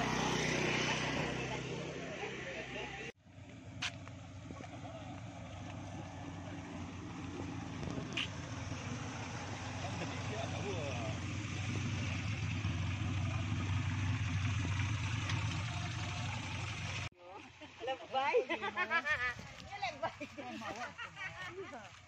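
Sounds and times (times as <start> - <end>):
car engines idling: 0.0 - 19.0.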